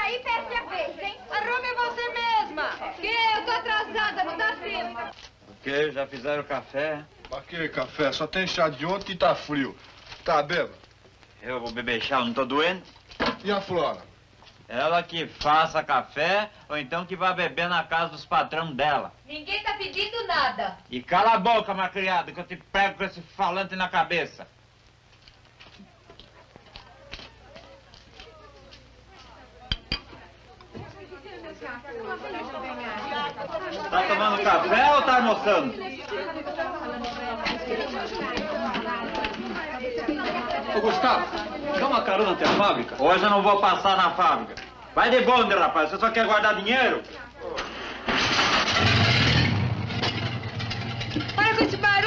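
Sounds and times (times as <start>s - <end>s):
faint background voices: 25.6s - 43.2s
vehicle engine starting and running: 47.6s - 51.8s.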